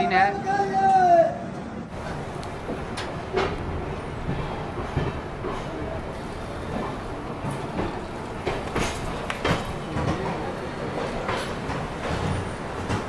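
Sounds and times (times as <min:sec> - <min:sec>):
train rumble: 0:00.0 - 0:13.0
train wheel clacks: 0:01.9 - 0:13.0.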